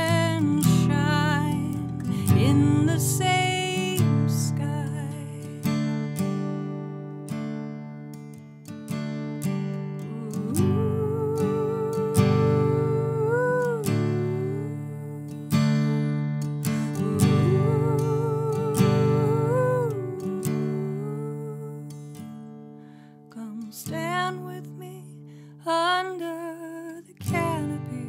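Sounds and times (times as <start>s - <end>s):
acoustic guitar chords: 0.0s - 28.0s.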